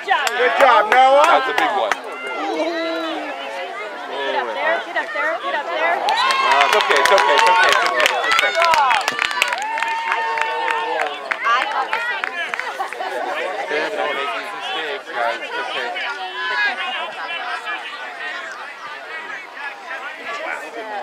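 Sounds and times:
voices talking and calling out: 0.0s - 21.0s
sharp claps: 6.0s - 12.7s.

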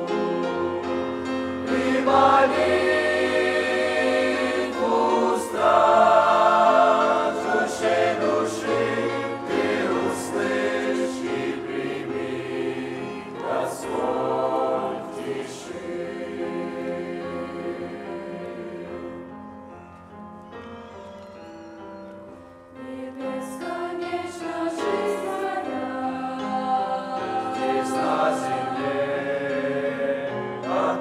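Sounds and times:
mixed choir singing a hymn: 0.0s - 19.6s, 22.8s - 31.0s.

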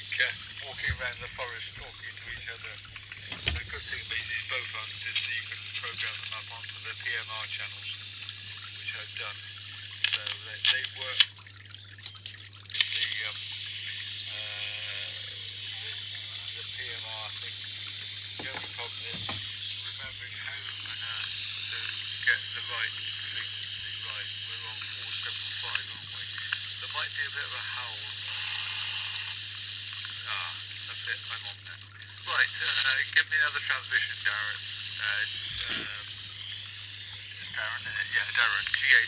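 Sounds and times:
faint voice over radio speaker: 0.0s - 2.8s, 3.4s - 8.0s, 8.8s - 9.4s, 10.0s - 11.2s, 12.8s - 13.4s, 14.3s - 17.6s, 18.4s - 29.4s, 30.2s - 36.1s, 37.4s - 39.0s
steady low hum: 0.0s - 26.9s.

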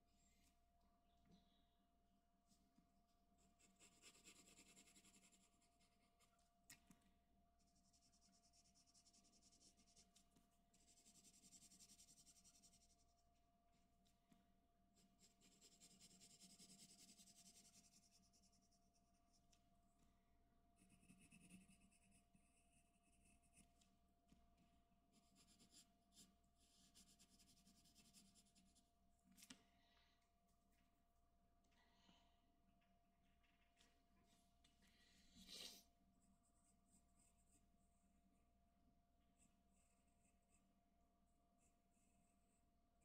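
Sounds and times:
pencil scratching on paper: 3.5s - 6.0s, 7.6s - 13.1s, 15.0s - 19.5s, 20.8s - 23.7s, 25.1s - 28.8s.

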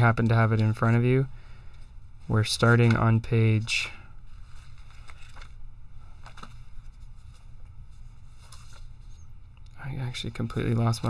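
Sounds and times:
low steady hum: 0.0s - 11.0s
pages rustling: 1.7s - 9.2s, 10.2s - 11.0s.

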